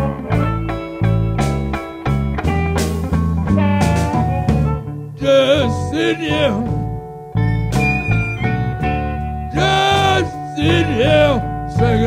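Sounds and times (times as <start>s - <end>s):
blues band playing: 0.0s - 12.0s
electric guitar bending note: 0.0s - 12.0s.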